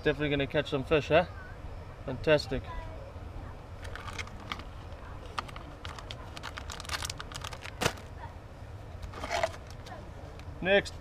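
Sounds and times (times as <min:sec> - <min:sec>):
plastic packaging crinkling: 0:03.8 - 0:08.1, 0:09.0 - 0:09.9
hands rummaging in cardboard box: 0:05.3 - 0:08.1, 0:09.1 - 0:09.9.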